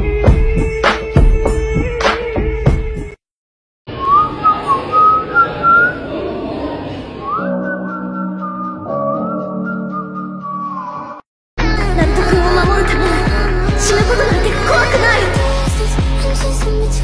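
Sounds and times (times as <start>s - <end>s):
whistled tune: 3.9s - 6.0s, 7.2s - 11.2s.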